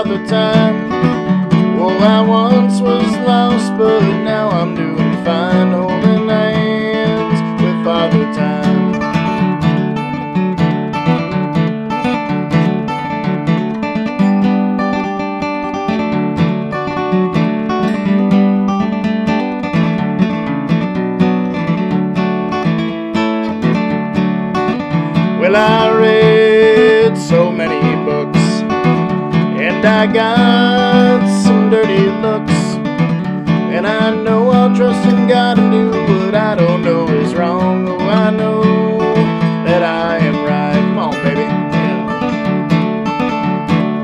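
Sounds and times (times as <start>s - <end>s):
man singing: 0.0s - 9.4s, 25.3s - 42.2s
acoustic guitar playing: 0.0s - 44.0s.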